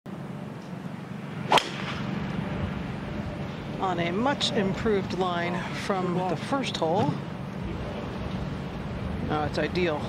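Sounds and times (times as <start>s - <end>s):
steady background noise: 0.1s - 10.0s
golf club striking ball: 1.5s - 2.1s.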